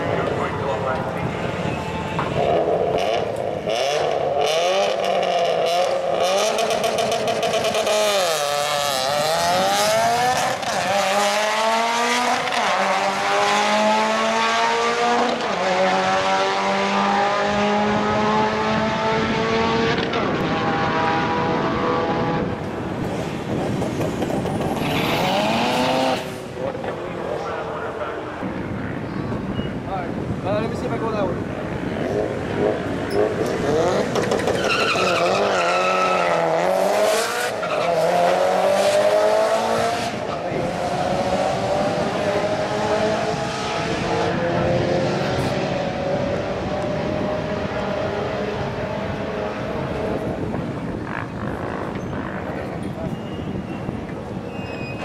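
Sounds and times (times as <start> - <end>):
cars accelerating hard with upshifts: 0.0 - 28.0, 31.4 - 53.1
race car engines revving: 0.0 - 55.0.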